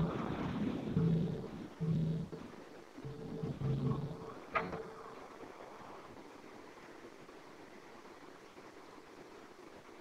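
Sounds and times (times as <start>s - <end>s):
low voice humming: 0.0s - 5.2s.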